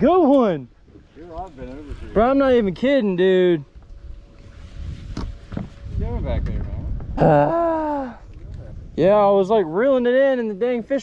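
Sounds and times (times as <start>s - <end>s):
faint steady hum: 0.0s - 11.0s
wind rumbling on microphone: 3.6s - 9.8s.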